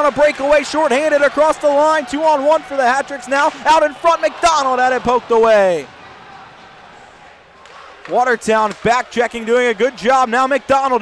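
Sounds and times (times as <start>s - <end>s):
ice rink arena ambience: 0.0s - 11.0s.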